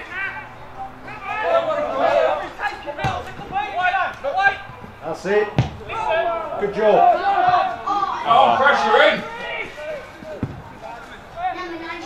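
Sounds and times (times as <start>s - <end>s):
voices calling across pitch: 0.0s - 12.0s
football kick thuds: 3.0s - 3.4s, 5.5s - 6.0s, 10.4s - 10.7s.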